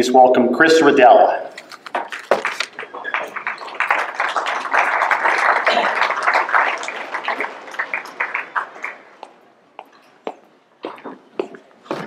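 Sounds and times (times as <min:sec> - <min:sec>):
audience applauding: 0:02.1 - 0:09.4.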